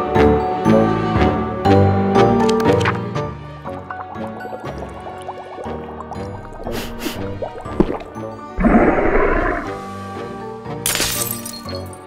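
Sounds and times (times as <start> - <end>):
background music: 0.0 - 12.0
cartoon bubbling bloops: 4.3 - 9.8.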